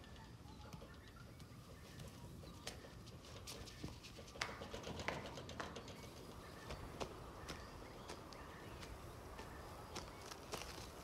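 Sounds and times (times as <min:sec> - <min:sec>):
birds calling: 0:00.0 - 0:11.0.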